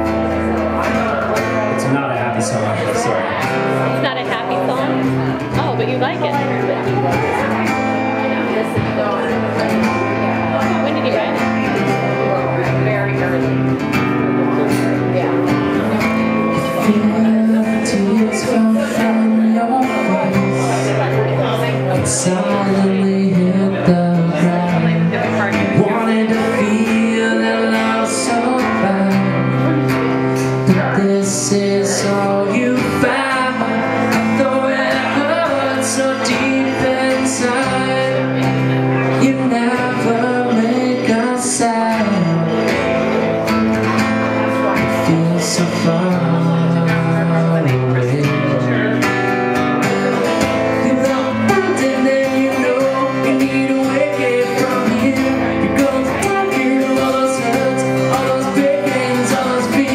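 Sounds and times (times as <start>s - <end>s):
acoustic guitar strumming: 0.0s - 59.9s
man singing: 0.0s - 59.9s.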